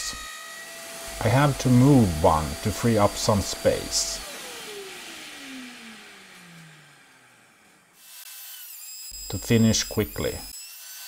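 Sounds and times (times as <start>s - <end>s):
router motor winding down: 0.1s - 10.8s.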